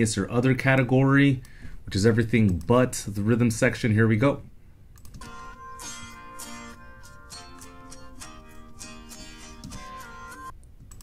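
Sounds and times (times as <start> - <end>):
plucked guitar notes: 5.2 - 10.5.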